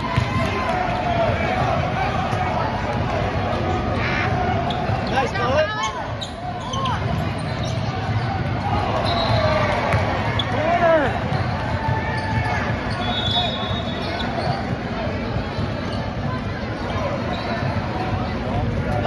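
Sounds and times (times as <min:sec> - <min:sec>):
spectators' voices: 0:00.0 - 0:19.0
sneakers squeaking: 0:02.3 - 0:19.0.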